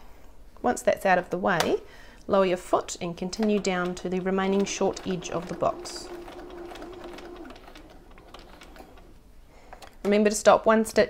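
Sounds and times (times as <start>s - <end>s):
sewing machine motor hum: 2.8s - 9.6s.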